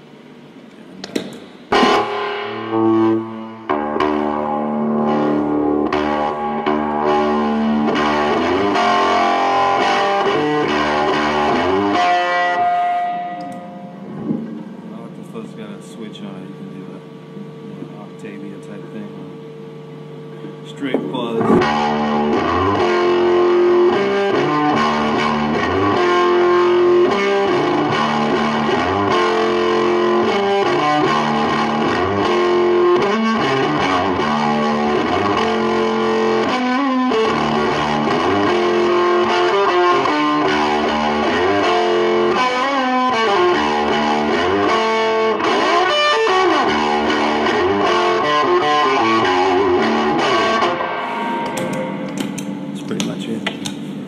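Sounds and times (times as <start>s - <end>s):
distorted electric guitar riff: 1.2s - 53.9s.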